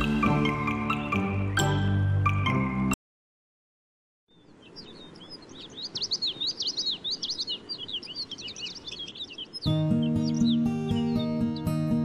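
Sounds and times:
birds chirping: 4.3 - 12.0
music with plucked notes: 9.7 - 12.0.

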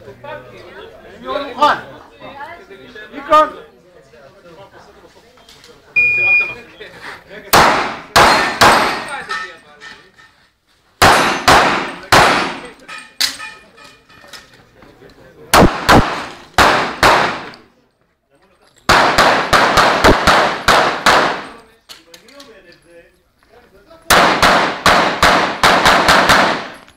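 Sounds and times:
pistol shots echoing: 7.6 - 9.2, 11.0 - 12.8, 15.6 - 17.6, 18.9 - 21.6, 24.1 - 26.9.

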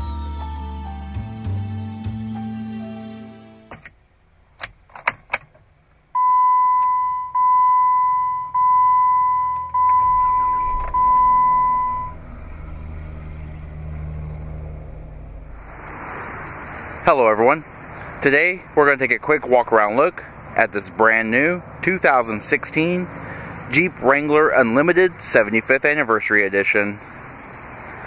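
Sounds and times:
intro music: 0.0 - 3.8
car engine starting and idling: 0.0 - 27.8
dashboard warning chime dinging: 3.0 - 4.0, 6.2 - 12.2.

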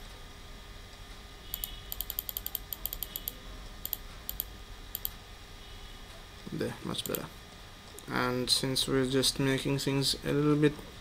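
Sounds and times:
computer mouse clicks: 1.5 - 5.2, 7.0 - 7.2.

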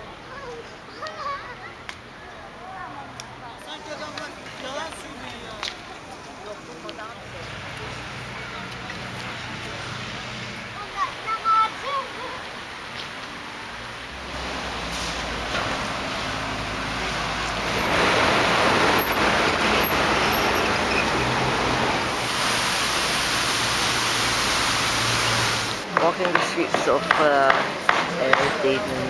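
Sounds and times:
faint voices: 0.0 - 13.8
road traffic rush: 0.0 - 29.0.

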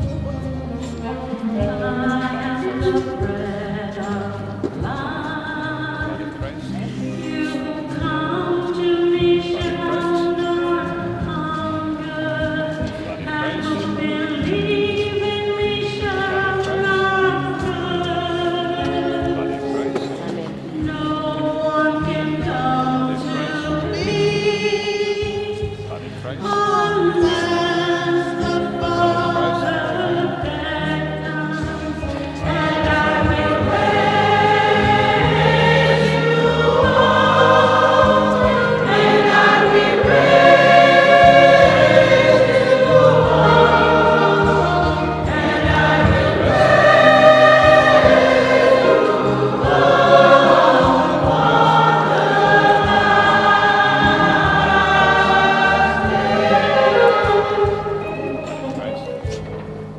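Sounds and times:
choir singing a hymn: 1.0 - 58.6
sustained low accompanying notes: 25.8 - 59.9.

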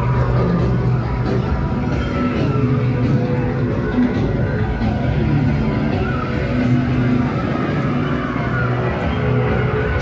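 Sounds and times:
droning ambient music: 0.0 - 10.0.

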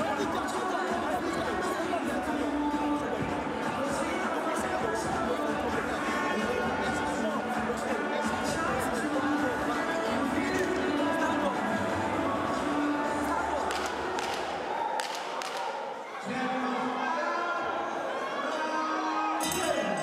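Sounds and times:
people talking: 0.0 - 14.6
background music in arena: 0.0 - 20.0.

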